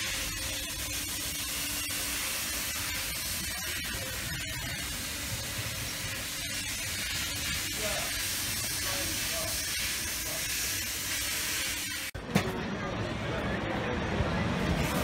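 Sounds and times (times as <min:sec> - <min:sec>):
steady hiss: 0:00.0 - 0:12.2
street crowd voices: 0:12.2 - 0:15.0.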